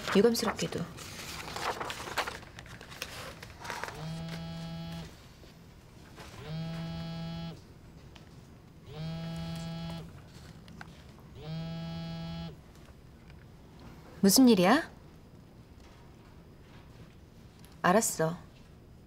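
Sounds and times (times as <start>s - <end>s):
mobile phone buzzing: 3.9s - 5.2s, 6.4s - 7.6s, 8.9s - 10.2s, 11.4s - 12.6s.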